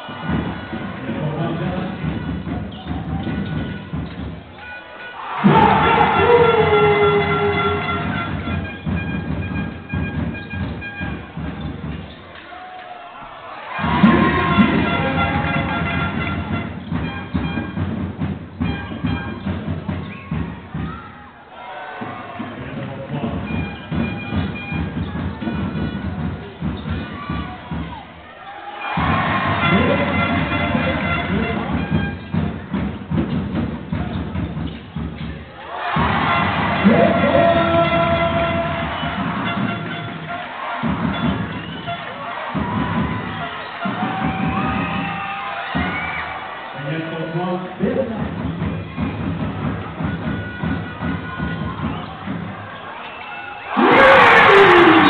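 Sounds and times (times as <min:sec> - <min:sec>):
arena crowd cheering: 0:00.0 - 0:17.9, 0:18.6 - 0:33.1, 0:35.4 - 0:55.0
background music: 0:03.7 - 0:11.9, 0:27.2 - 0:34.0.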